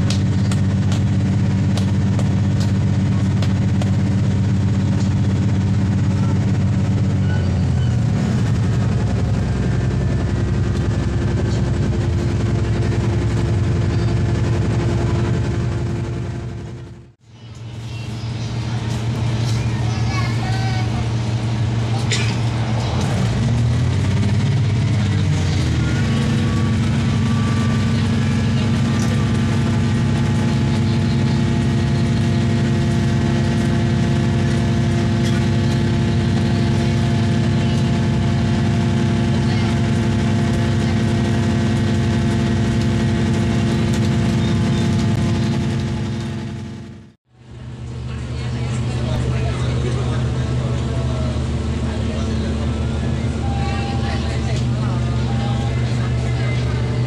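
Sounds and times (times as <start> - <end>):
railcar diesel engine hum: 0.0 - 57.0.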